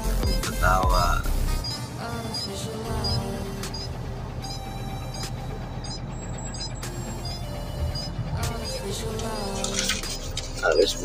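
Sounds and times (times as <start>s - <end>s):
music playing: 0.0s - 11.0s
truck diesel engine humming: 0.0s - 11.0s.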